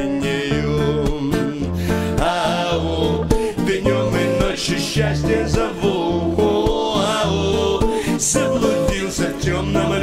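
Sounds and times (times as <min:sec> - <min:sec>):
guitar-led song: 0:00.0 - 0:10.0
repeating bass line: 0:00.3 - 0:10.0.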